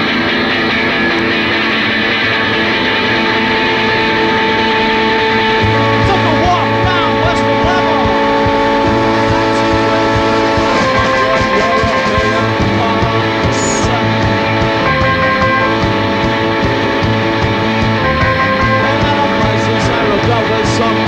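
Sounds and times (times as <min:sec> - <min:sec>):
ringing guitar notes: 0:00.0 - 0:21.0
low bass note: 0:03.9 - 0:21.0.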